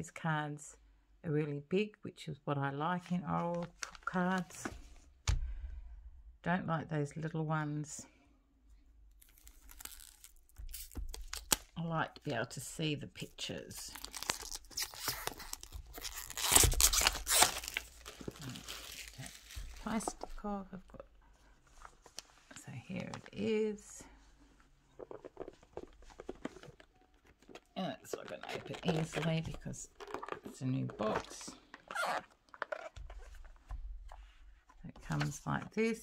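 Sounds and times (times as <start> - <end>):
plastic wrap crinkling: 9.1 - 11.8, 13.7 - 20.7, 24.9 - 33.6.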